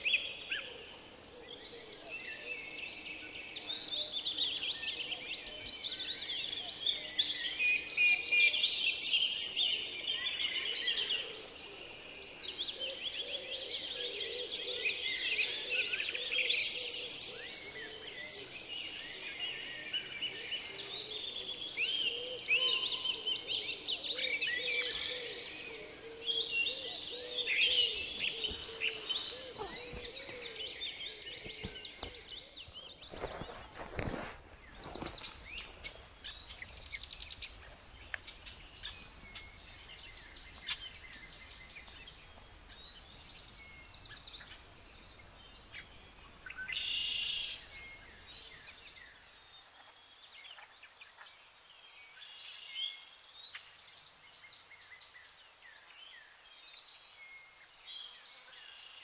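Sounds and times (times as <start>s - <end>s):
songbirds chorus: 0.0s - 59.0s.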